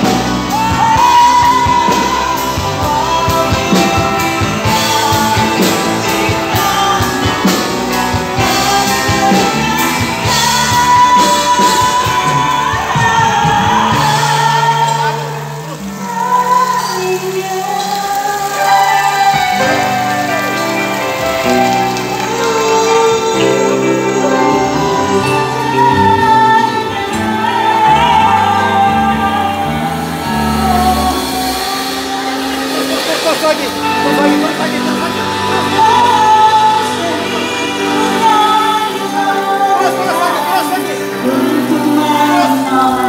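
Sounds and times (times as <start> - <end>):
live band music: 0.0 - 43.0
person singing: 0.0 - 43.0.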